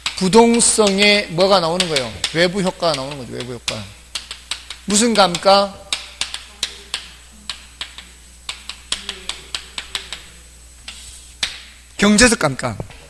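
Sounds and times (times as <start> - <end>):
chalk tapping and scraping on chalkboard: 0.0 - 11.7.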